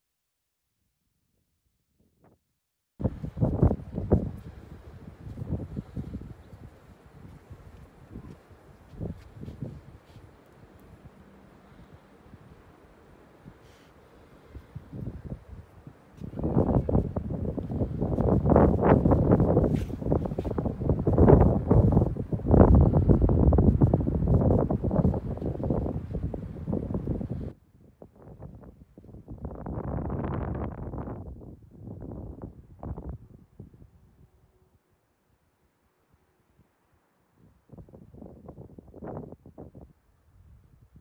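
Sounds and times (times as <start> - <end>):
wind buffeting microphone: 3.0 - 12.7, 14.5 - 34.3, 37.4 - 41.0.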